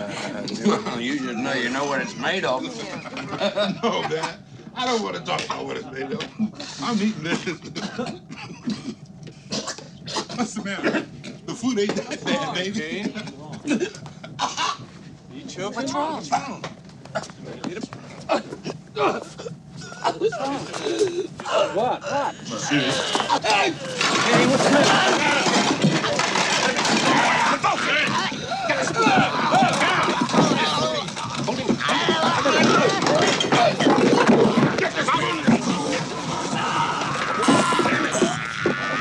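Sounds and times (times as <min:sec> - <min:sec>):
people shouting agitatedly: 0:21.6 - 0:39.0.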